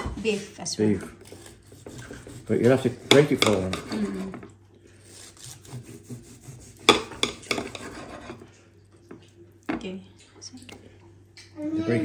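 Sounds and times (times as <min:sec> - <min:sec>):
knife slicing meat: 0:00.9 - 0:04.4, 0:05.0 - 0:08.5
knife clinking on ceramic plate: 0:03.1 - 0:04.4.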